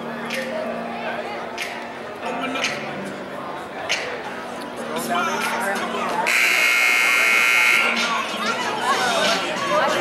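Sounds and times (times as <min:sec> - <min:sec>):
voices in gym: 0:00.2 - 0:10.0
scoreboard buzzer blast: 0:06.3 - 0:08.0.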